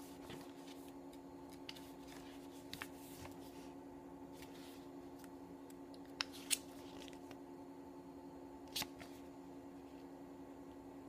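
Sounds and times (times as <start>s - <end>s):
pages turning: 0.0s - 5.3s, 6.1s - 7.4s, 8.7s - 9.2s
faint steady hum: 0.0s - 11.0s.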